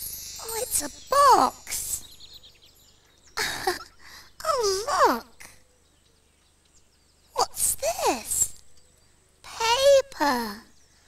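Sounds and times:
falling tinkle of chimes: 0:00.0 - 0:04.0.

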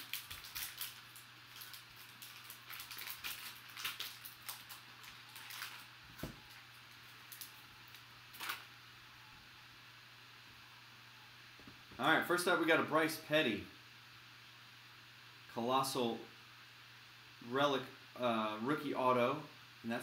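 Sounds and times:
foil wrapper crinkling and tearing: 0:00.0 - 0:08.7.

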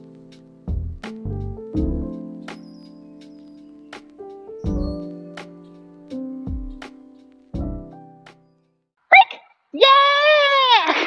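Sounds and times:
person calling out: 0:09.1 - 0:11.0.

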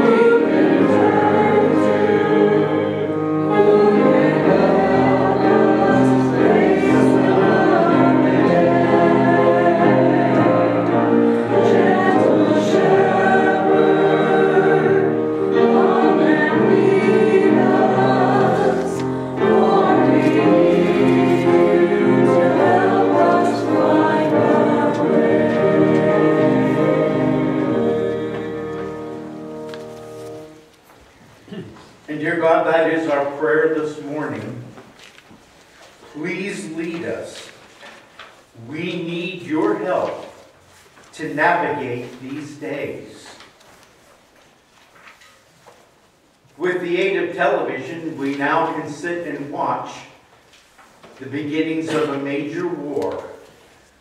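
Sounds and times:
congregation singing a hymn: 0:00.0 - 0:30.8, 0:36.0 - 0:43.6, 0:46.6 - 0:50.3, 0:51.1 - 0:54.0.

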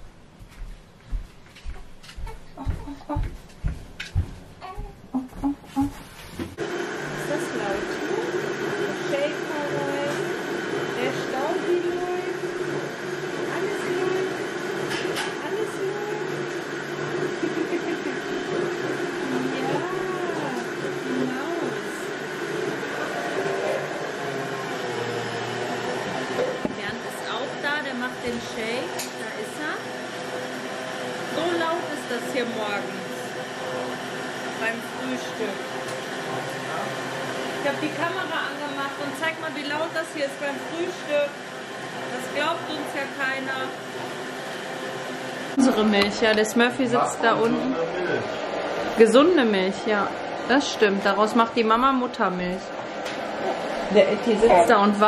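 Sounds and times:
blender running: 0:06.6 - 0:55.0.

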